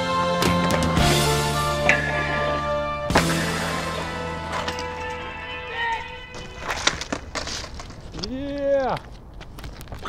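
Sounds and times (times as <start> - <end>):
soundtrack music held notes: 0.0 - 6.6.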